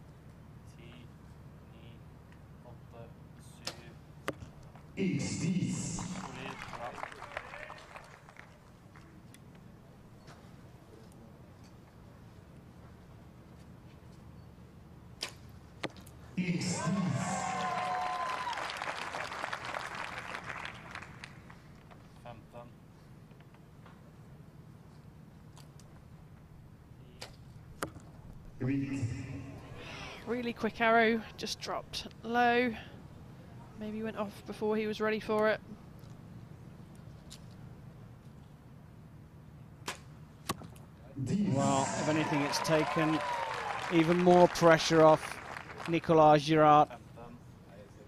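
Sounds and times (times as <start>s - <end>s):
low background hum: 0.0s - 48.0s.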